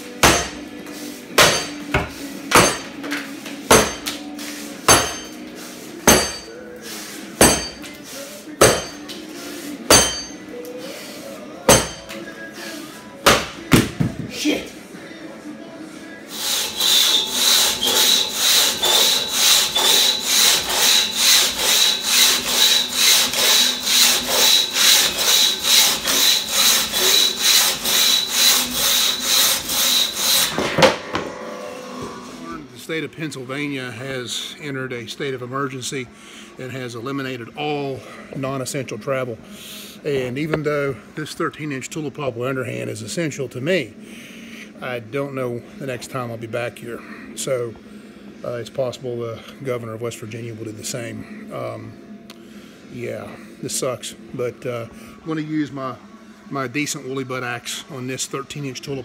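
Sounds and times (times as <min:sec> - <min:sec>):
axe chopping wood: 0:00.2 - 0:00.6, 0:01.4 - 0:02.8, 0:13.3 - 0:14.1
crosscut saw cutting log: 0:16.3 - 0:32.0.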